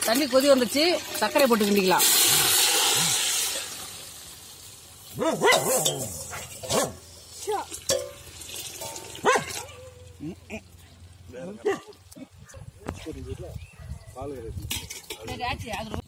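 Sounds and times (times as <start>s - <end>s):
dog barking: 5.2s - 7.0s, 9.2s - 10.0s, 11.6s - 12.7s.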